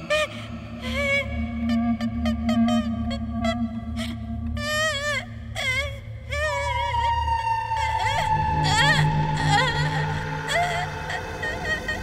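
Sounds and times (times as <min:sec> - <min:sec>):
woman whimpering and moaning: 0:00.0 - 0:12.0.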